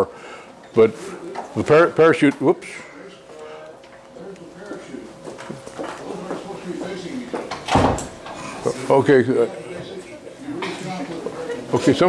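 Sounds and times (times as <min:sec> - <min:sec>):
faint speech: 0:08.4 - 0:12.0.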